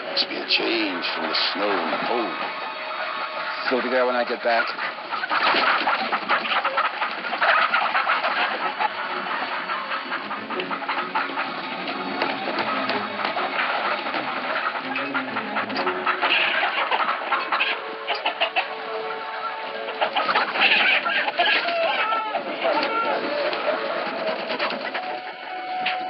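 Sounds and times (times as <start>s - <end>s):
chickens clucking: 0.0s - 26.0s
clatter of wooden crates: 3.7s - 18.6s, 20.0s - 26.0s.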